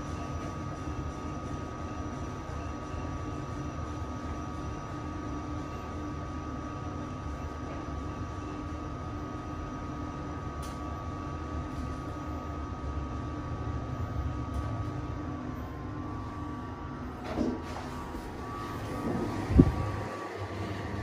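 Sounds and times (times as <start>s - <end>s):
constant high whine: 0.0s - 21.0s.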